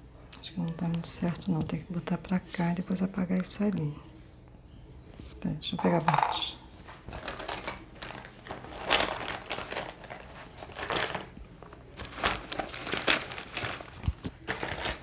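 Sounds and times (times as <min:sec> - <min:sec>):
packaging rustling and crinkling: 0:06.9 - 0:15.0.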